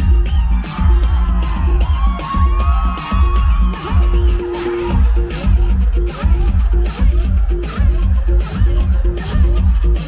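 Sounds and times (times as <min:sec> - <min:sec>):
crowd whooping and yelling: 0:00.0 - 0:07.0
live pop music with heavy bass: 0:00.0 - 0:10.0.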